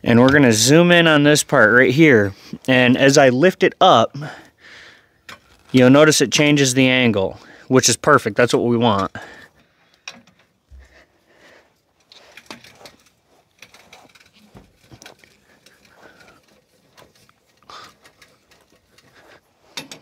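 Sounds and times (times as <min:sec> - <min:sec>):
jack metallic clicks and creaks: 0:00.0 - 0:07.5, 0:08.1 - 0:20.0.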